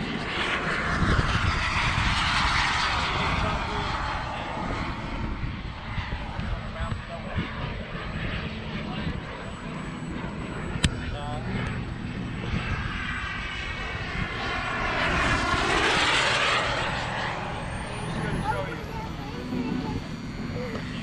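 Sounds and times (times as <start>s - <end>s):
model jet flying by: 0.0s - 21.0s.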